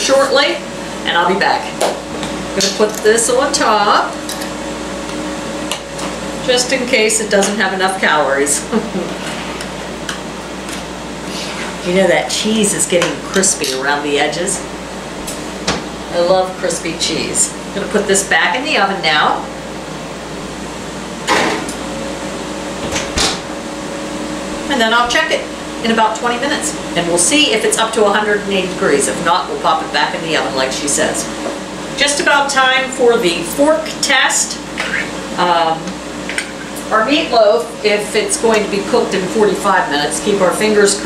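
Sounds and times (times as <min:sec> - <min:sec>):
steady low hum: 0:00.0 - 0:41.0
oven door shutting clunks: 0:22.8 - 0:23.5.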